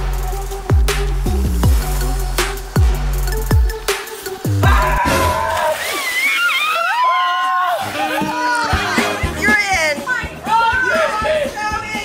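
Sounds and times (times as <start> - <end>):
electronic music with bass drop: 0.0 - 6.0
water splashing and sloshing: 1.5 - 10.4
high sliding shrieks: 4.7 - 7.9.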